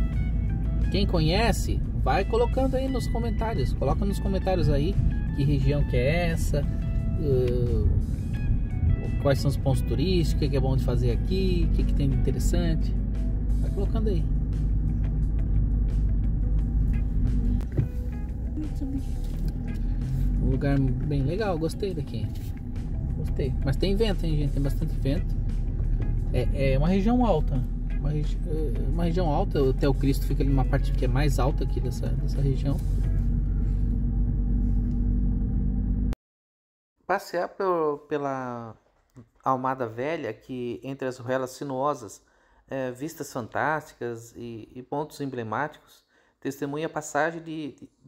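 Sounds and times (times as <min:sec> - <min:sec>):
car engine and road rumble: 0:00.0 - 0:36.2
low hum: 0:00.0 - 0:36.2.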